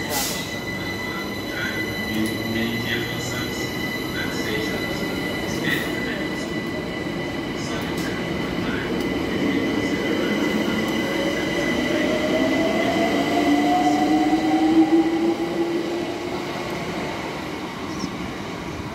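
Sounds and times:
train electrical whine: 0.0s - 18.9s.

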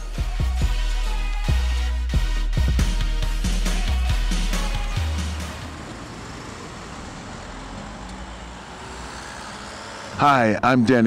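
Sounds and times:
dance music with heavy bass: 0.0s - 5.7s
city street traffic: 3.0s - 11.0s.

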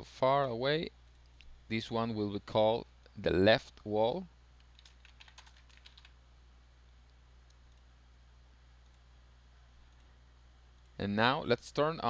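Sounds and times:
low steady hum: 0.0s - 12.0s
typing on computer keyboard: 4.7s - 6.2s.

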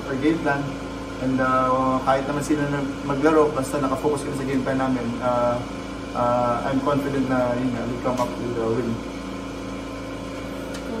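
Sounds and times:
low machine hum with steady tones: 0.0s - 11.0s.

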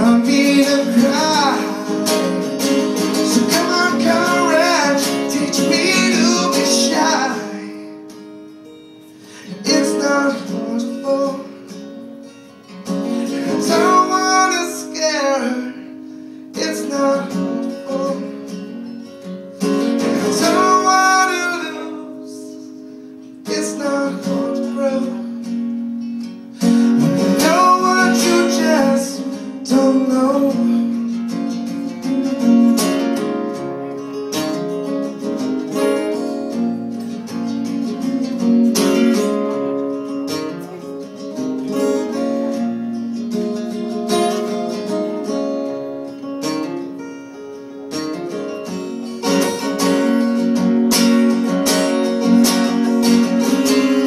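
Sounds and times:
acoustic guitar strumming: 0.0s - 54.0s
person singing: 3.0s - 8.0s, 13.3s - 16.0s, 20.0s - 22.8s.

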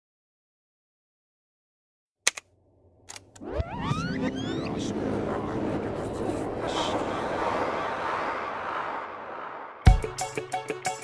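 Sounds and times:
low hum: 2.6s - 9.8s
rising pitch sweep: 3.3s - 10.1s.

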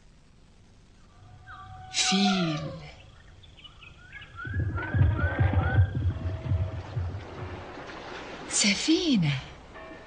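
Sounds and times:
low rhythmic pulsing: 0.0s - 10.0s
bird chirps: 1.0s - 7.0s.

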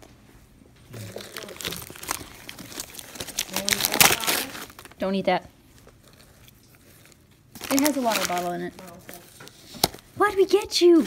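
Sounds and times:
wrapping paper crinkling and tearing: 1.0s - 5.2s, 5.8s - 11.0s.

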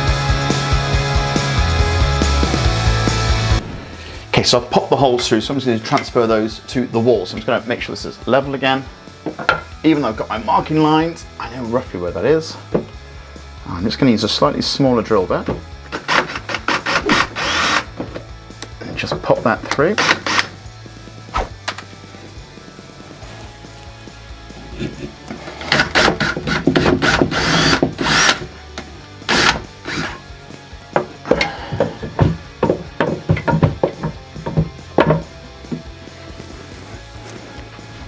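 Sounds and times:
background music: 0.0s - 38.0s
cordless drill drilling timber: 15.9s - 18.0s, 20.0s - 20.6s, 25.5s - 28.5s, 29.3s - 30.2s.

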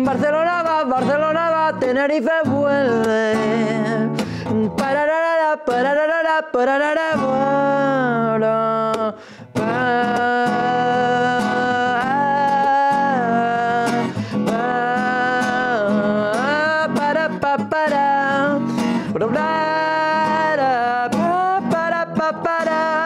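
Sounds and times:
wordless singing: 0.0s - 23.0s.

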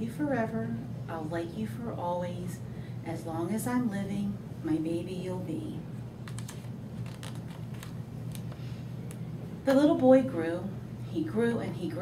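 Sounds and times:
steady low hum: 0.0s - 12.0s
book pages turning: 6.2s - 8.6s.

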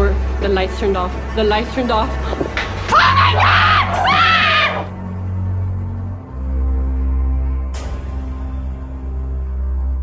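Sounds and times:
person screaming: 2.9s - 4.9s.

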